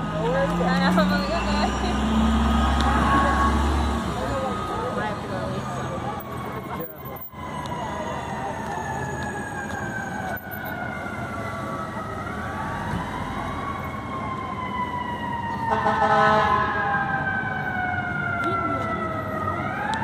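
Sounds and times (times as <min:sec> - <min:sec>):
city street traffic: 0:00.0 - 0:20.0
emergency vehicle siren wailing: 0:00.0 - 0:20.0.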